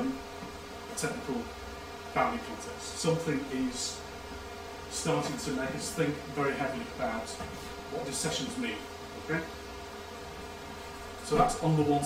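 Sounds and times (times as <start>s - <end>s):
steady electrical buzz: 0.0s - 12.0s.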